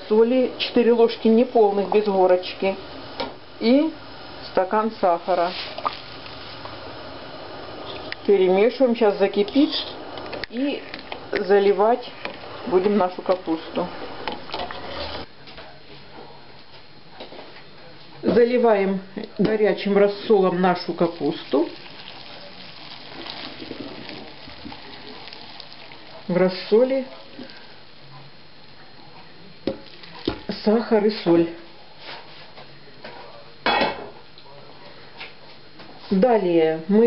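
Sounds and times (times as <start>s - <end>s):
pot of brine hissing: 0.0s - 15.3s, 19.6s - 32.5s
liquid pouring and splashing: 5.3s - 8.3s, 13.2s - 15.2s, 20.2s - 27.8s, 29.6s - 30.6s.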